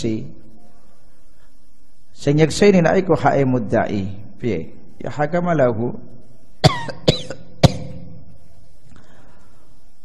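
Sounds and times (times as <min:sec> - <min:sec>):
man coughing into microphone: 0:06.6 - 0:08.1.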